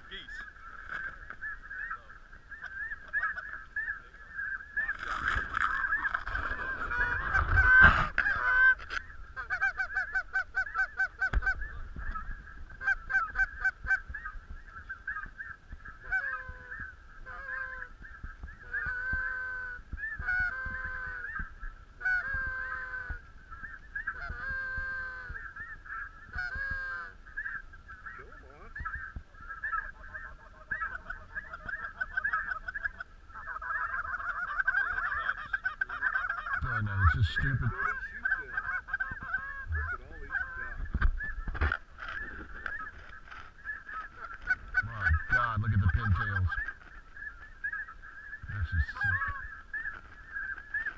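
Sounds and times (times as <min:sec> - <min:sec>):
geese honking: 0:00.0 - 0:50.9.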